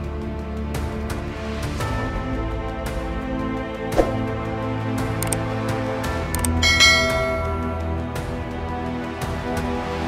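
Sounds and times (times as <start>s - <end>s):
background music: 0.0s - 10.0s
bright bell ding: 6.6s - 8.0s.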